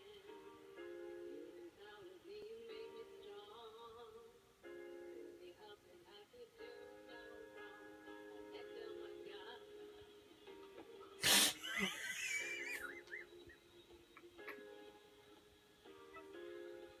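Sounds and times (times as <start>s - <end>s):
television music held chords: 0.0s - 17.0s.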